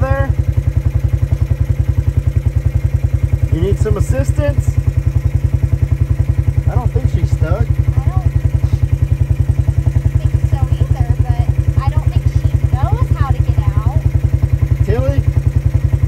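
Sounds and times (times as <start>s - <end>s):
small engine idling: 0.0s - 16.0s.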